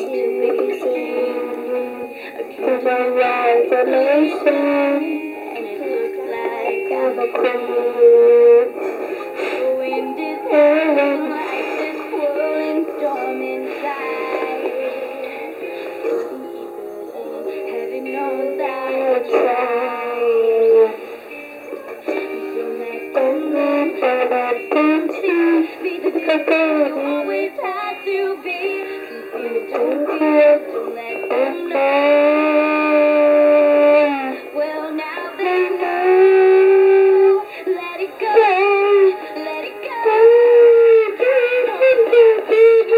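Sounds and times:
girl singing through toy speaker: 0.0 - 42.9.

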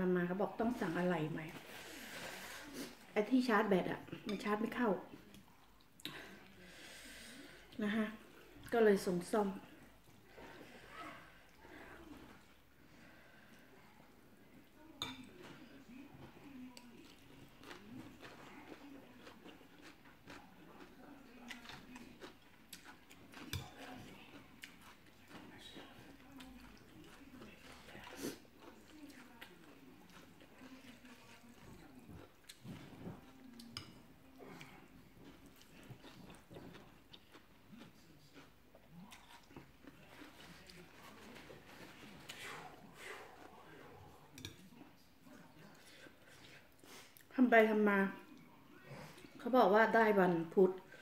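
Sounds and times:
person chewing food: 14.6 - 47.3.

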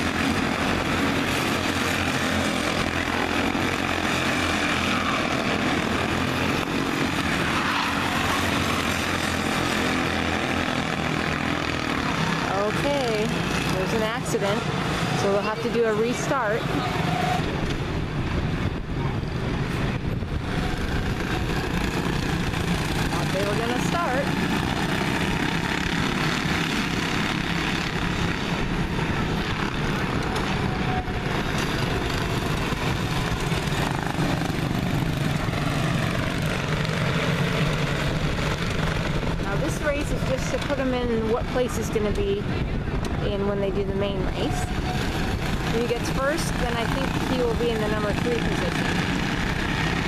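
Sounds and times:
race car engines droning: 0.0 - 50.0.

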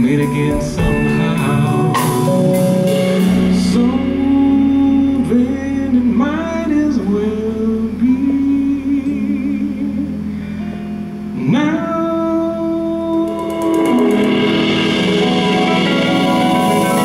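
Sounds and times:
man singing into microphone: 0.0 - 10.3, 11.4 - 14.7
soul jazz band playing: 0.0 - 17.0
cymbal strokes: 13.2 - 17.0.

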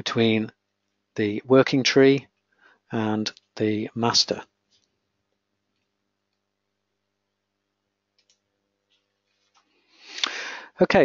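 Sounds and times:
faint steady hum: 0.0 - 11.0
computer mouse clicks: 8.2 - 9.0.

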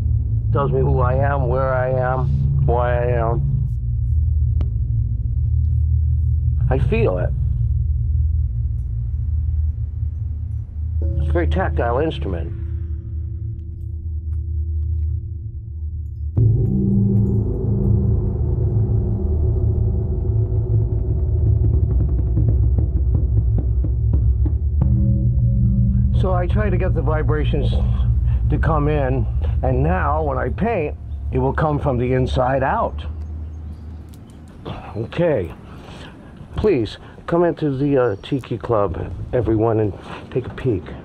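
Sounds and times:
deep low rumble: 0.0 - 40.0
gong ringing: 6.6 - 13.4, 16.4 - 21.0, 24.8 - 33.1.

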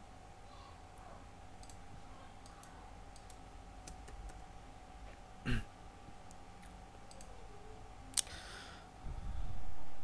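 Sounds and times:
low electrical hum: 0.0 - 10.0
computer mouse clicks: 1.6 - 1.8, 2.4 - 4.4, 6.3 - 7.4.

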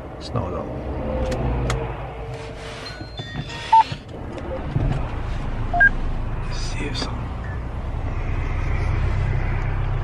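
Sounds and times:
short electronic beeps: 5.7 - 5.9.

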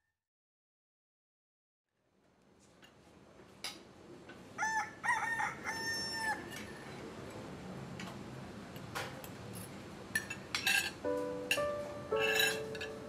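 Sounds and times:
rooster crowing: 4.6 - 6.9.

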